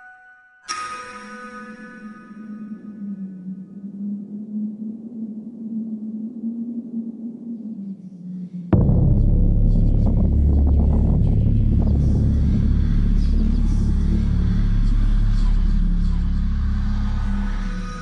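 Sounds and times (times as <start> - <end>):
deep cinematic rumble: 8.7 - 18.0.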